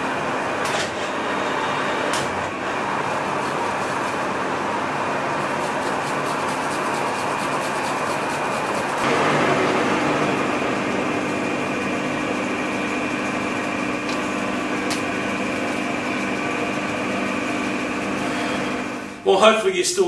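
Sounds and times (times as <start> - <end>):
metal lathe humming: 8.8 - 19.2.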